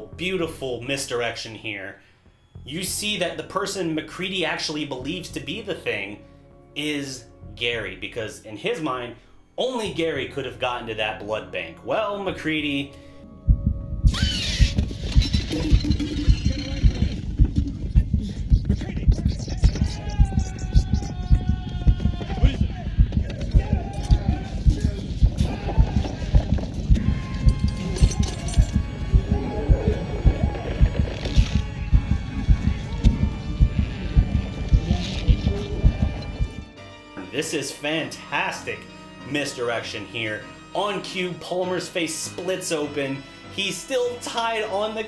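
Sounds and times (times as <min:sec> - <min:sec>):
low heartbeat-like pulse: 0:13.4 - 0:36.8.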